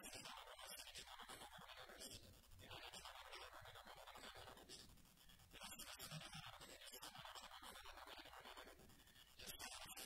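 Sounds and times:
faint scratchy hiss: 0.0 - 10.0.

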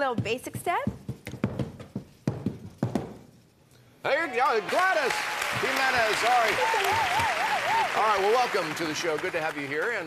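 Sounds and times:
tap shoes tapping on stage: 0.0 - 3.2, 5.2 - 7.3.

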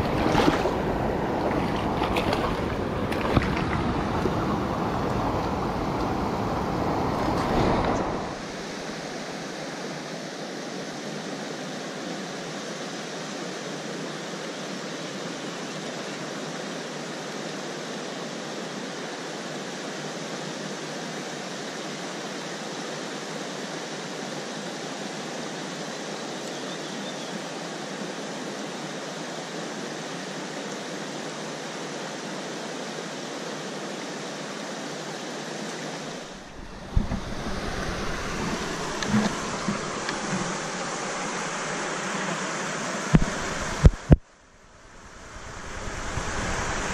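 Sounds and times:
stream running over rocks: 0.0 - 46.9.

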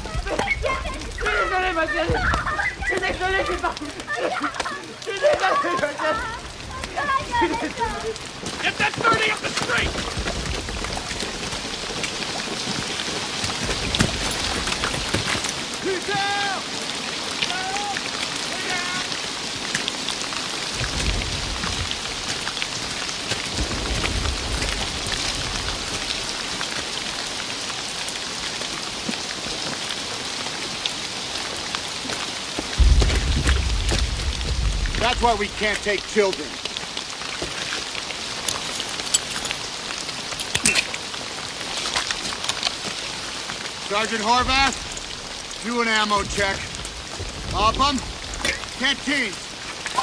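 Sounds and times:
heavy rain falling: 0.0 - 50.0
low rumbles: 32.8 - 36.8, 43.8 - 49.8.

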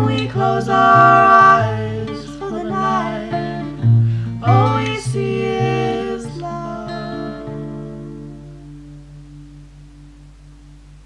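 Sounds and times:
guitar chord ringing out: 0.0 - 11.0
steady low hum: 0.0 - 11.0.

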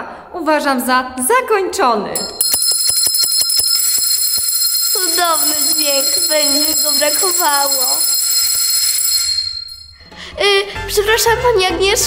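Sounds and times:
hand bell ringing: 2.2 - 10.0.

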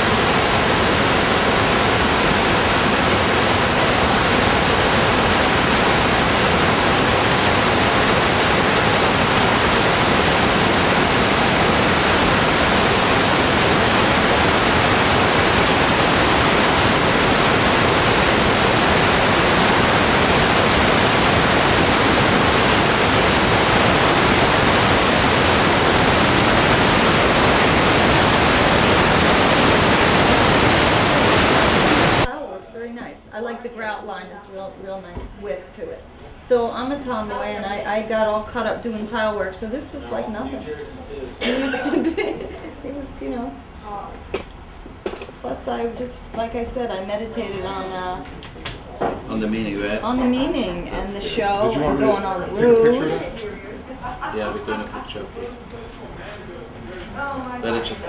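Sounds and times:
static hiss: 0.0 - 58.0.

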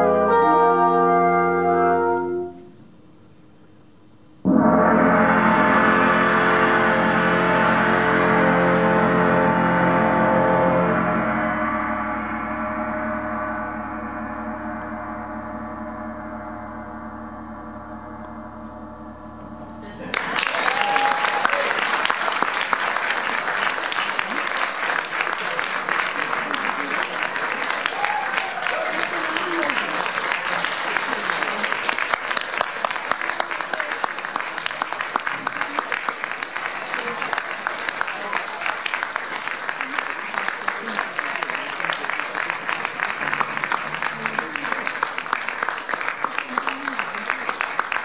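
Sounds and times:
audience applause: 19.9 - 48.0.

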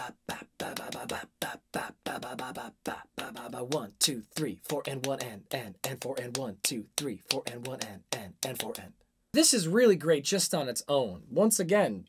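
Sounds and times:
man whispering rhythmic syllables: 0.0 - 9.1.

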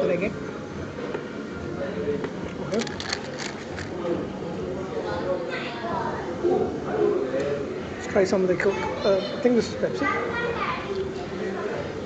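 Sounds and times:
general chatter: 0.0 - 12.0.

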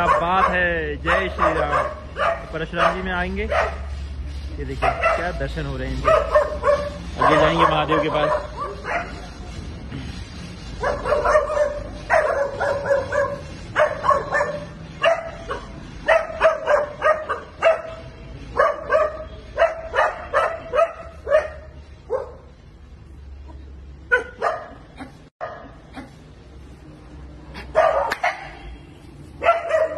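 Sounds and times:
dogs barking: 0.0 - 9.5, 10.7 - 22.6, 23.5 - 26.2, 27.5 - 28.7, 29.4 - 29.9.

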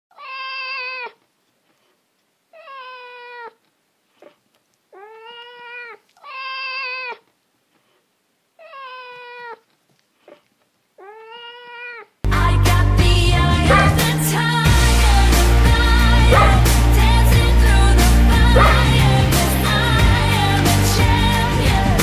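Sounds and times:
dog howling: 13.7 - 14.1, 16.2 - 16.7, 18.4 - 19.1.

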